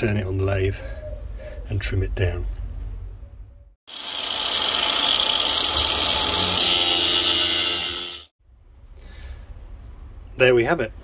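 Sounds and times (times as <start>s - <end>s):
angle grinder cutting steel: 3.9s - 8.4s.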